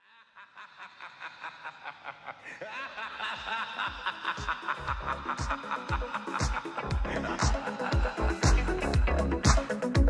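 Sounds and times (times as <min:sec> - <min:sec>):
quick laugh-like pulses: 0:00.0 - 0:10.0.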